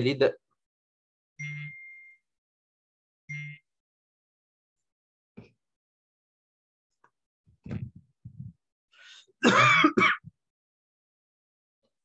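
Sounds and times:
person clearing throat: 9.4 - 10.3.

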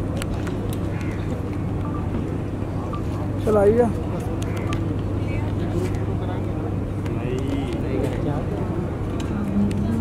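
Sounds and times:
steady low hum: 0.0 - 10.0
faint chatter of people: 0.8 - 10.0.

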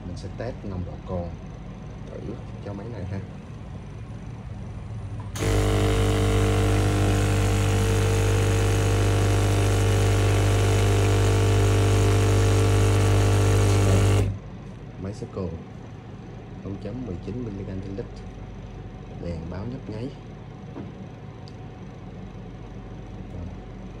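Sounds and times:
electric air pump humming: 5.2 - 14.8.

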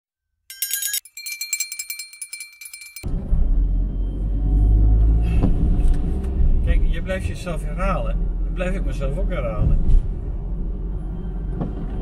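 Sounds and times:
car driving from inside cabin: 3.0 - 12.0.

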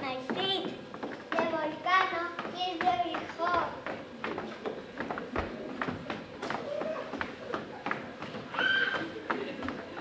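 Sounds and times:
footsteps on wooden stage: 0.0 - 10.0.

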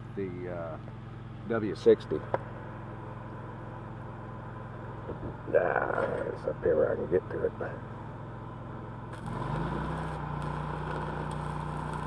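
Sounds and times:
welder engine humming: 0.0 - 12.0
welding arc hissing and crackling: 9.1 - 12.0.

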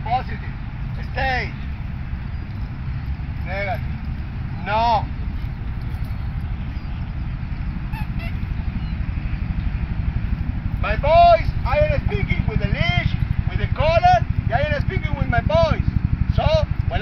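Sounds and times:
steady low rumble: 0.0 - 17.0
short honking calls: 7.8 - 9.4.

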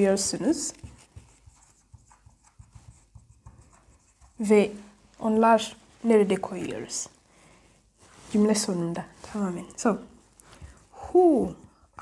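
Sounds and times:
marker pen on whiteboard: 0.0 - 6.8.

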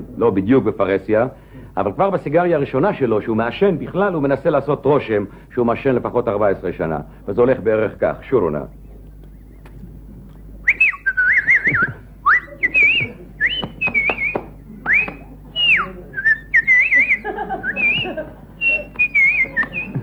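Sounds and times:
man whistling warbling phrases: 10.6 - 18.0.

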